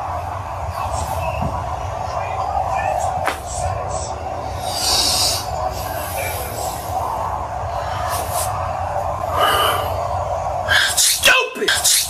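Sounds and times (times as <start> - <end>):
steady noisy roar: 0.0 - 12.0.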